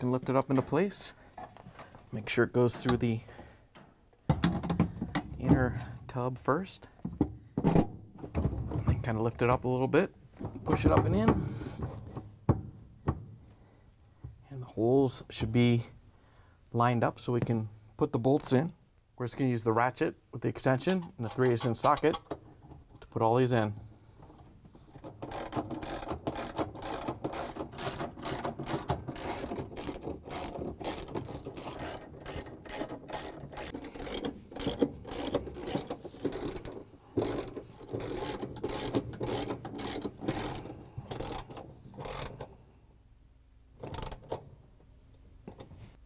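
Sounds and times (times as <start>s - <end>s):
hand ratchet clicking: 24.9s - 42.5s, 43.8s - 44.4s.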